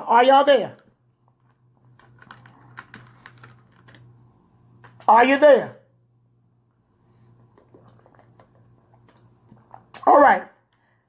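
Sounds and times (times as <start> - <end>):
computer keyboard typing: 1.4 - 4.1.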